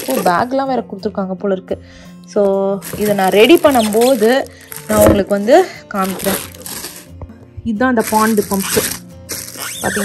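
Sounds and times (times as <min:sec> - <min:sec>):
plastic packaging crinkling: 0:00.0 - 0:00.5, 0:02.7 - 0:07.2, 0:08.0 - 0:10.0
background music: 0:00.0 - 0:10.0.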